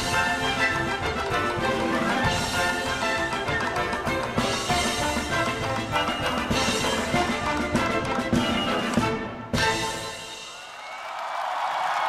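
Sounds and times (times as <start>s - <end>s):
orchestral folk-dance music: 0.0s - 10.7s.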